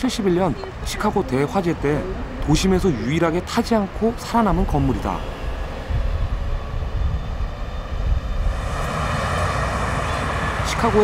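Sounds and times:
bus engine rumble: 0.0 - 11.0
rushing noise: 4.0 - 11.0.

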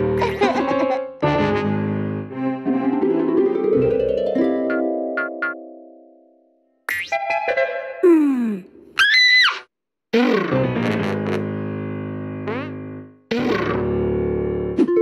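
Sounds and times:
plucked notes: 2.4 - 6.1.

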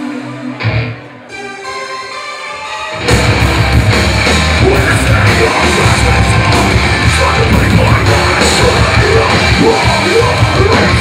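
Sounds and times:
distorted electric guitar: 0.0 - 1.4, 2.6 - 11.0
pounding drum kit: 3.0 - 11.0.

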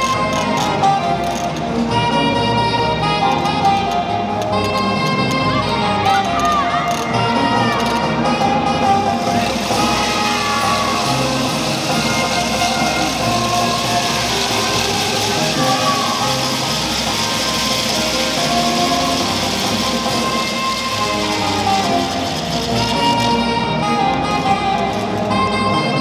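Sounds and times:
brass band playing: 0.0 - 26.0
noisy wash: 8.8 - 25.3.

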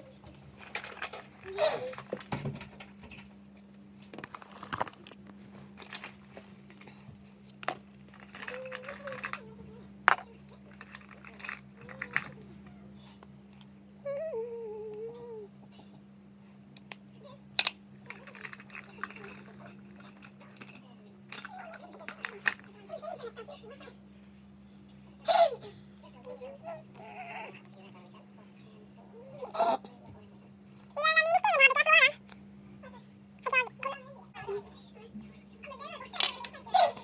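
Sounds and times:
steady low hum: 0.0 - 37.0
soft rustling: 3.2 - 9.4
girl's high-pitched voice: 31.0 - 32.2, 32.8 - 37.0.

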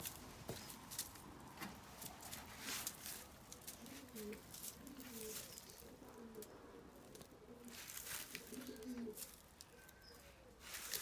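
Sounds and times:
straw rustling: 0.0 - 11.0
pigeons cooing: 3.4 - 11.0.

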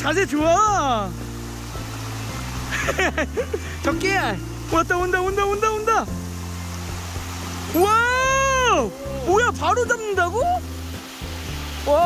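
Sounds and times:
water running over stones: 0.0 - 12.0.

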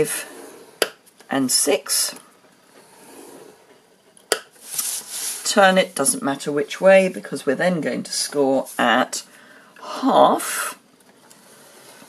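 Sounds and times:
card sliding across board: 4.3 - 5.5.

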